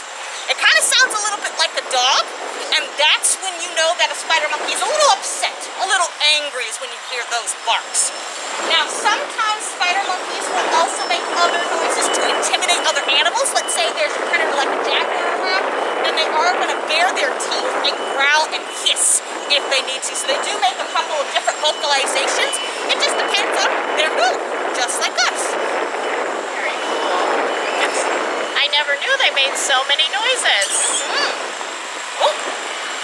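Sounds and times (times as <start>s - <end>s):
woman talking: 0.4s - 25.6s, 26.5s - 31.4s.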